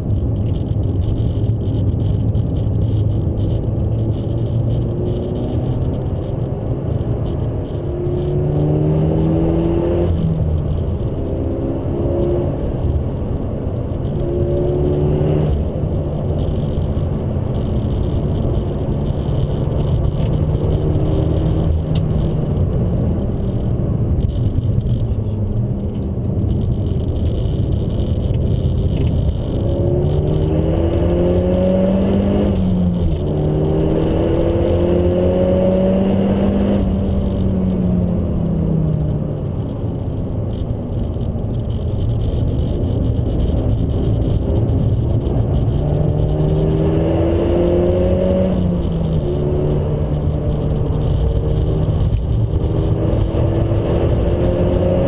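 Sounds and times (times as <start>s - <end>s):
car engine accelerating: 0.0s - 55.0s
road and tyre rumble: 0.0s - 55.0s.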